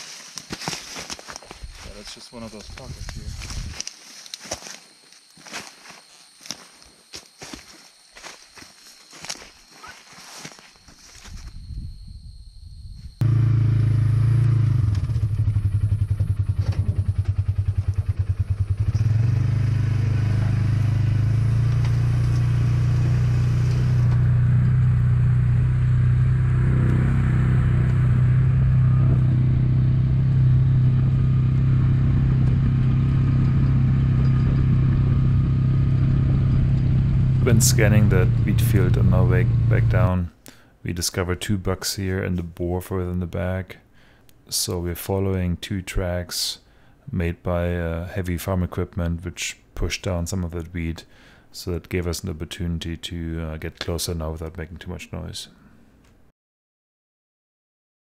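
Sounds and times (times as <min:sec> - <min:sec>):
footsteps crunching through corn stalks: 0:00.0 - 0:11.6
utility vehicle engine running: 0:13.2 - 0:40.1.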